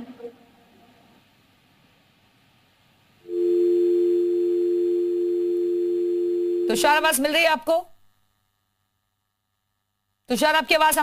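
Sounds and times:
two-note telephone dial tone: 3.3s - 6.7s.

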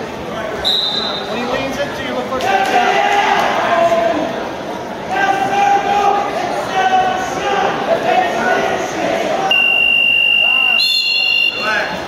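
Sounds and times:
crowd voices and shouts: 0.0s - 12.0s.

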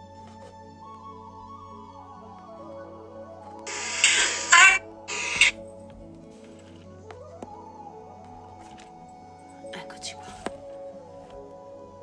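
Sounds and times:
soft calm background music: 0.0s - 12.0s.

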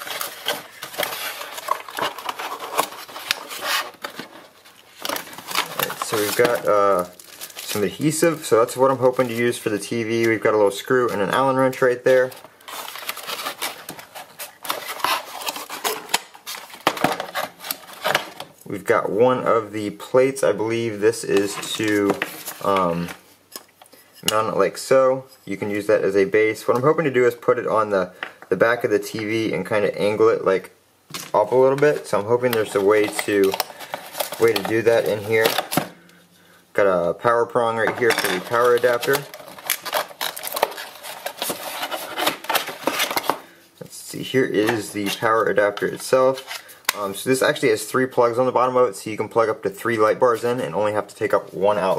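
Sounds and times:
paperboard rustling and scraping: 0.0s - 7.1s, 12.0s - 18.4s, 38.0s - 43.4s.

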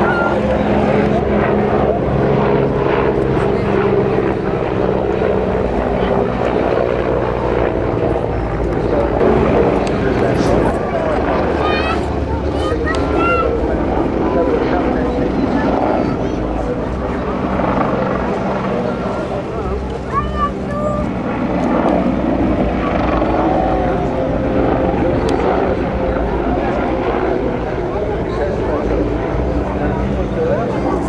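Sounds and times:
helicopter flying overhead: 0.0s - 31.0s
voices in background: 0.0s - 31.0s.

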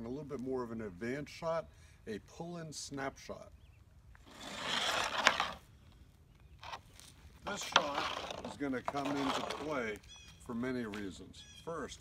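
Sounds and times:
hockey puck scraping on board: 4.2s - 5.6s, 7.5s - 9.8s.

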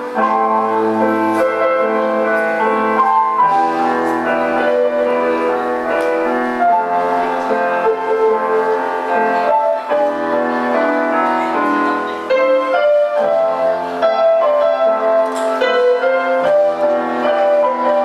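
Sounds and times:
electronic keyboard piano melody: 0.0s - 18.0s.

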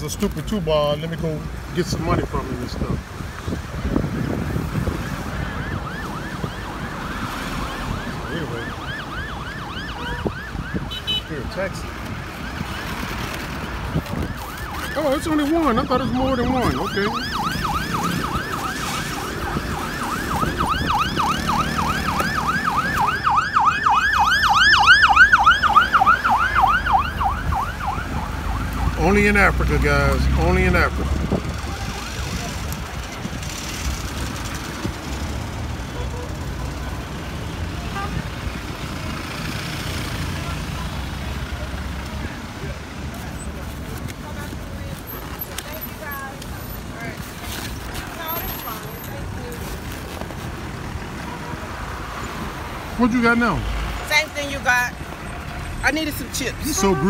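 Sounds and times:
street traffic: 0.0s - 57.0s
emergency vehicle siren: 3.7s - 45.2s.

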